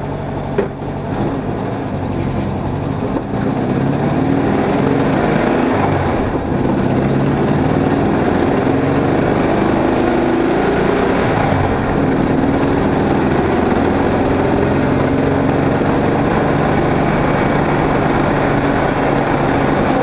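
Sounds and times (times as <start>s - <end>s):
car engine running: 0.0s - 20.0s
road and wind noise: 0.0s - 20.0s.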